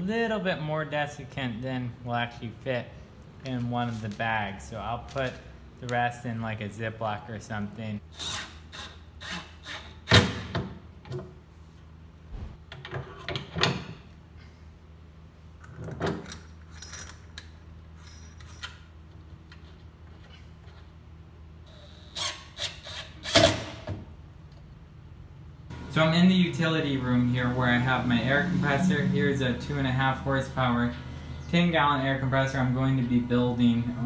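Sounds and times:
steady low hum: 0:24.1 - 0:34.0.

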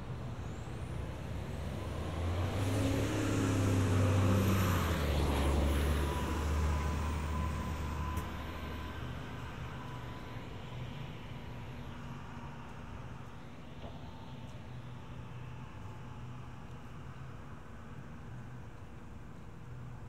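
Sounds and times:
bus engine rumble: 0:00.0 - 0:20.0.

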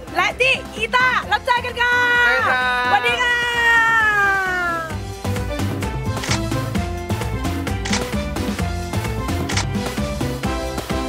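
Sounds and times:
light background music: 0:00.0 - 0:11.0
woman cheering call: 0:01.5 - 0:05.0.

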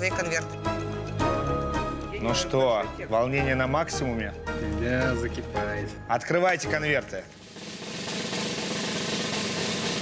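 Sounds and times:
snare drum roll: 0:07.2 - 0:10.0.

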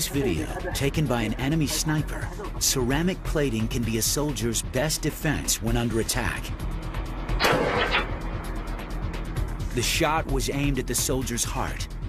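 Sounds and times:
background music: 0:00.0 - 0:12.0
rifle shot: 0:07.4 - 0:08.1.

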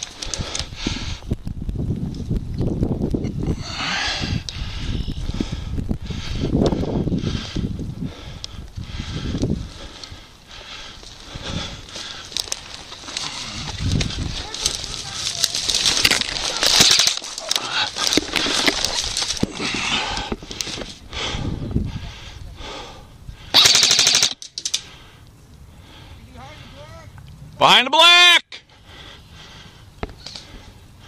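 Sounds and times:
airsoft guns firing bursts: 0:23.6 - 0:24.4.

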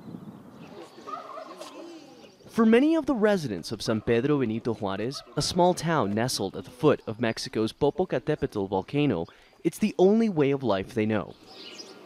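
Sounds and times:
fowl warbling call: 0:00.7 - 0:02.4.

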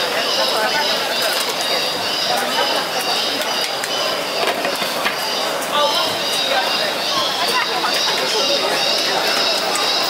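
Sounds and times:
market crowd noise: 0:00.0 - 0:10.0.

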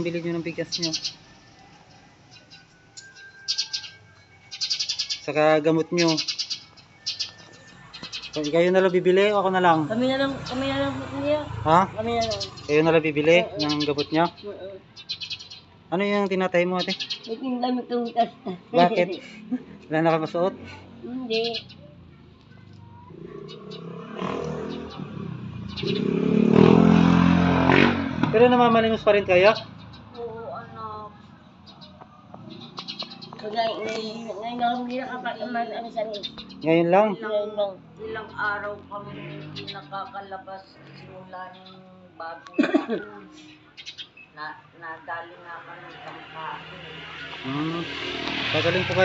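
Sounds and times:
rapid high-pitched animal chirping: 0:00.2 - 0:01.5, 0:02.3 - 0:09.4, 0:10.2 - 0:15.7, 0:16.7 - 0:19.2, 0:21.3 - 0:22.0, 0:29.5 - 0:36.8
vehicle engine running: 0:07.8 - 0:14.9.

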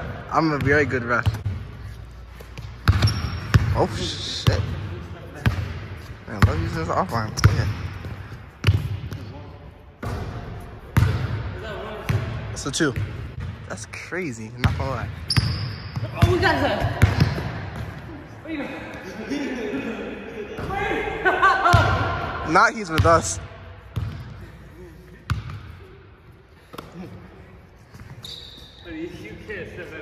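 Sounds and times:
basketball bouncing on wooden floor: 0:02.6 - 0:03.8, 0:15.4 - 0:18.0.

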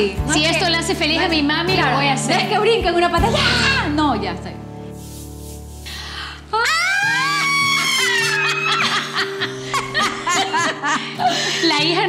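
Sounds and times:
light background music: 0:00.0 - 0:12.0
women laughing: 0:06.9 - 0:12.0.

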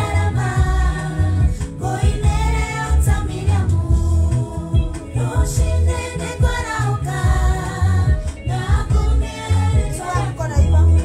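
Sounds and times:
music with deep bass and beat: 0:00.0 - 0:11.0
woman and girls singing: 0:00.0 - 0:11.0.

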